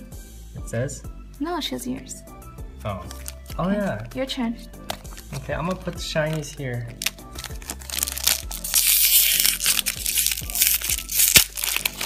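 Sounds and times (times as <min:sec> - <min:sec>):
foil pack crinkling and tearing: 0:05.0 - 0:12.0.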